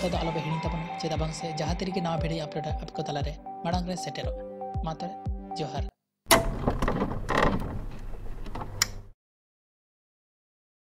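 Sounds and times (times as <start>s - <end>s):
clicks and mechanical rattling: 6.3s - 9.1s.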